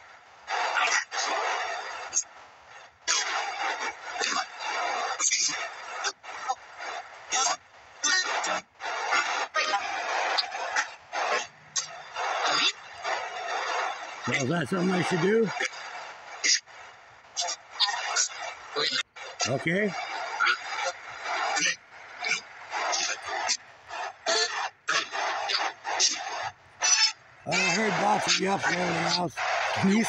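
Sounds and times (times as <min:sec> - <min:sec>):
choppy bursts of radio static: 0:00.0 - 0:30.0
broken snatches of radio sound: 0:00.5 - 0:30.0.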